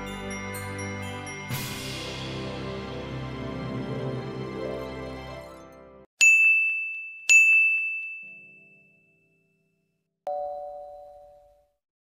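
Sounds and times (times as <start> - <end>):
background music: 0.0 - 6.1
high bell dings: 6.2 - 11.7.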